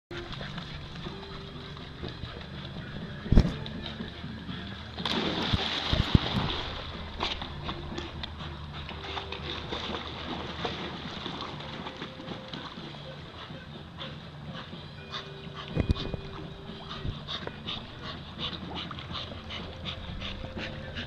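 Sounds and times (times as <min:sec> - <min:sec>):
water splashing: 0:00.1 - 0:13.4
dog plunging into water: 0:05.0 - 0:08.1, 0:08.8 - 0:12.2.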